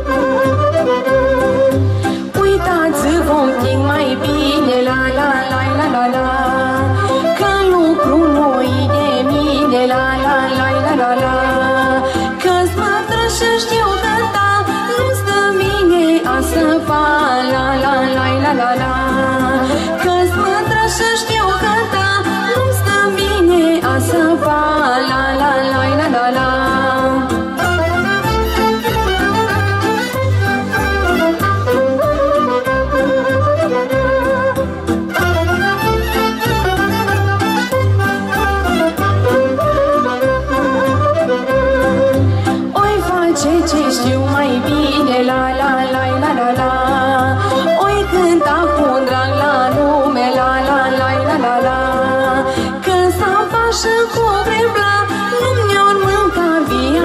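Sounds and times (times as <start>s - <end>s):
woman singing folk song: 0.0s - 30.1s, 41.4s - 57.0s
amplified backing music with bass beat: 0.0s - 57.0s.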